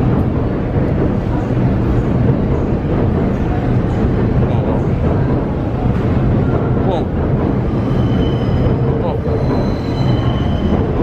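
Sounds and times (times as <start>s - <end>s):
loud steady low rumble: 0.0s - 11.0s.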